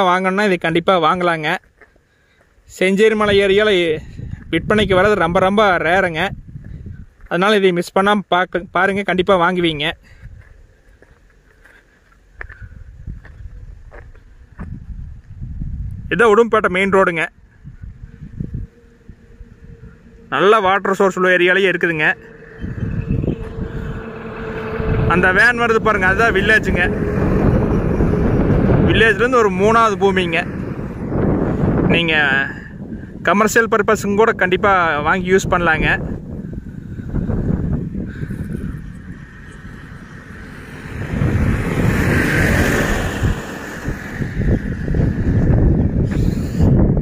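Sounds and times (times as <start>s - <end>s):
truck engine and tyre rumble: 0.0s - 47.0s
wind buffeting the microphone: 2.6s - 7.3s, 8.5s - 11.2s, 12.2s - 21.0s, 22.1s - 47.0s
vehicle passing: 17.3s - 33.3s, 34.3s - 47.0s.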